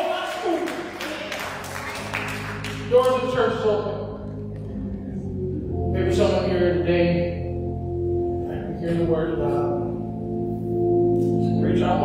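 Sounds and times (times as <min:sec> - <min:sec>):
organ chords: 0:00.0 - 0:12.0.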